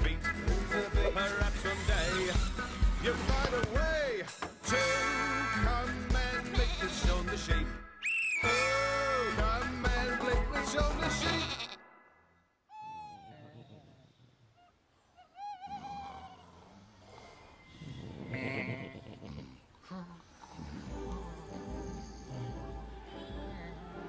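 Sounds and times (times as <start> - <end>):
sheep bleating: 4.7 - 7.2, 11.0 - 11.9.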